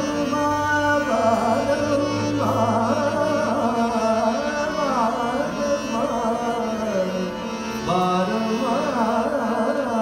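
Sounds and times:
harmonium: 0.0s - 10.0s
man singing: 0.0s - 10.0s
tanpura drone: 0.0s - 10.0s.

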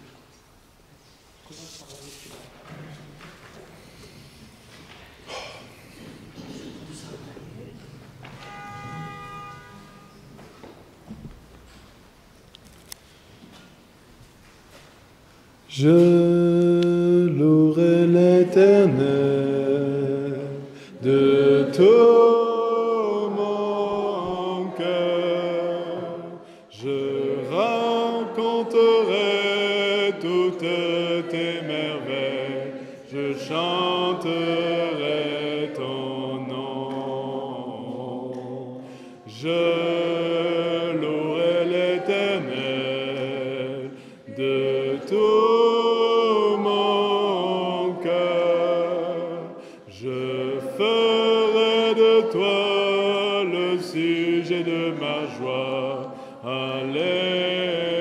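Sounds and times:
congregation singing a hymn: 8.2s - 10.8s, 15.7s - 58.0s.

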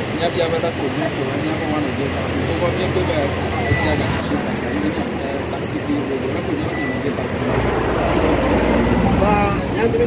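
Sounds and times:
man speaking: 0.0s - 7.5s.

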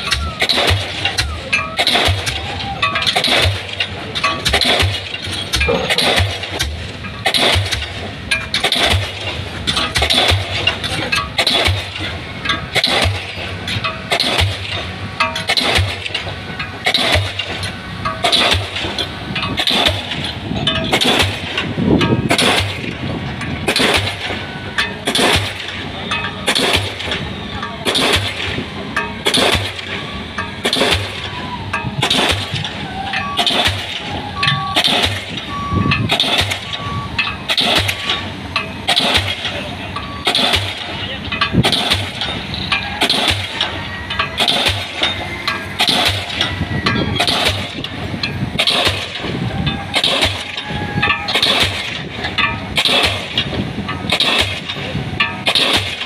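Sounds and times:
machinery rumble: 0.0s - 56.0s
pile hammer striking: 0.0s - 56.0s.

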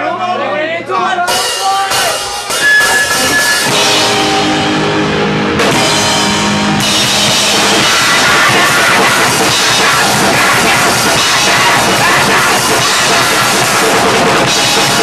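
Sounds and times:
band playing loud and dense: 1.2s - 15.0s
drum hits: 1.3s - 15.0s.

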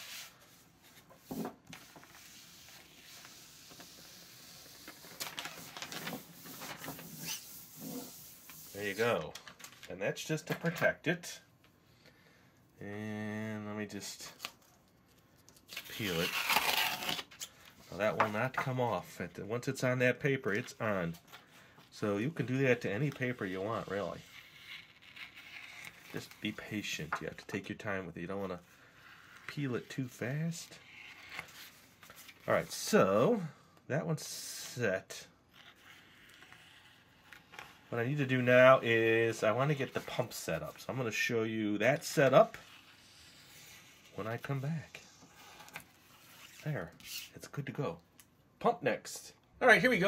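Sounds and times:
film rubbed flat by hand: 0.0s - 9.2s, 23.0s - 26.9s, 42.0s - 47.4s
backing sheet crinkling: 4.8s - 10.0s.

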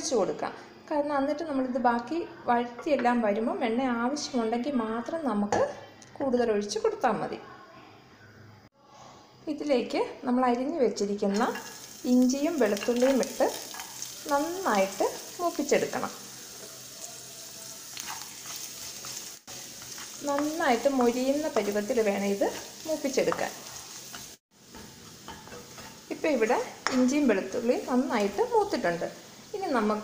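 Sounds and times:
garlic sizzling in hot oil: 9.6s - 30.0s
spatula stirring in pan: 11.3s - 30.0s.

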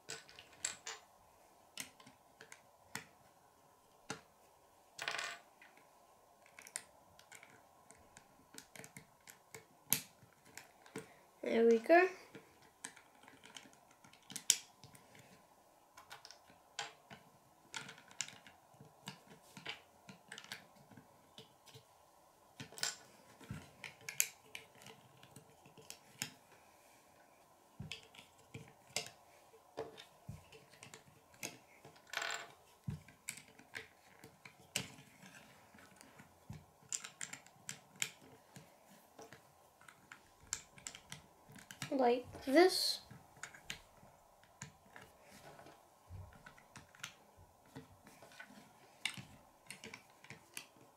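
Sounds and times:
plastic toy bricks clicking: 0.0s - 1.0s, 6.4s - 11.1s, 12.3s - 15.3s, 16.0s - 21.8s, 22.6s - 26.4s, 29.8s - 38.6s, 39.2s - 41.9s, 49.0s - 50.8s.

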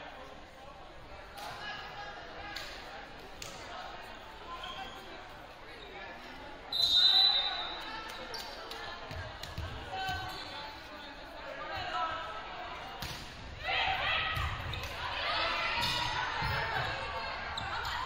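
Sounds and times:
echoing murmur of voices: 0.0s - 18.0s
referee whistle blast: 6.7s - 7.8s.

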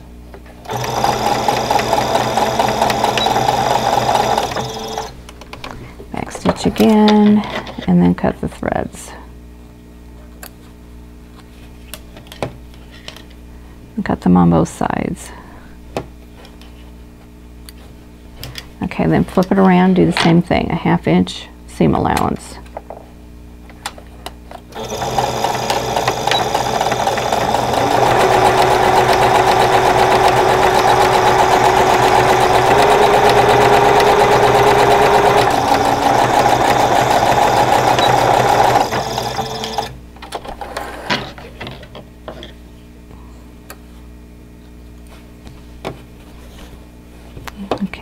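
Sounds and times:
sewing machine stitching: 0.7s - 5.2s, 24.7s - 40.0s.

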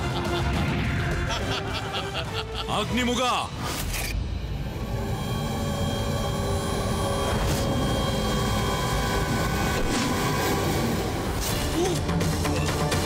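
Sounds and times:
sustained dramatic tones: 4.2s - 11.4s.

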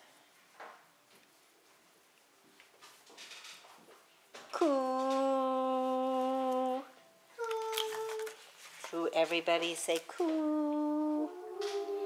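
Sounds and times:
voice holding oo note: 10.2s - 12.0s.

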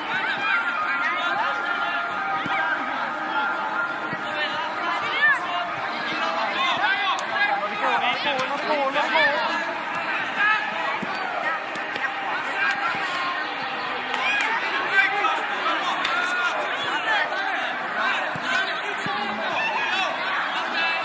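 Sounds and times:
overlapping voices chattering: 0.0s - 21.0s.

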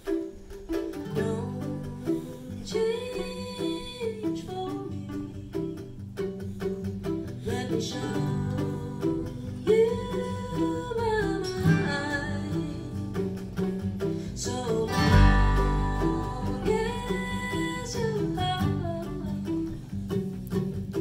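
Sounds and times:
bluegrass string band playing: 0.0s - 21.0s
woman singing: 1.0s - 6.0s, 7.3s - 19.9s.

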